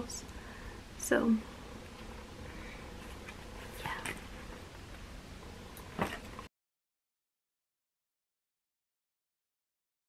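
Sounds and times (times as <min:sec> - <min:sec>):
steady low hum: 0:00.0 - 0:06.5.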